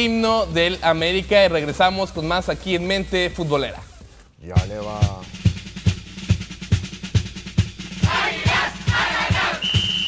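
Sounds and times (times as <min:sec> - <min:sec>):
bass drum beat: 0:04.5 - 0:10.0
snare and percussion hits: 0:04.5 - 0:10.0.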